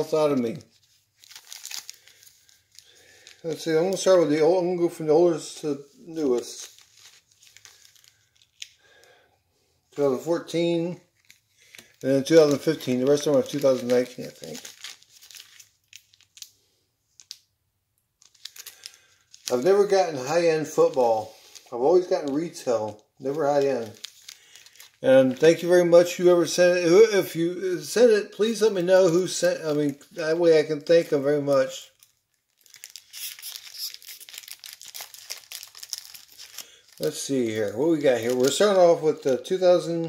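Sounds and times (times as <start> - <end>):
foil wrappers crinkling: 0.0 - 9.2, 10.0 - 17.5, 18.2 - 26.6, 28.4 - 39.9.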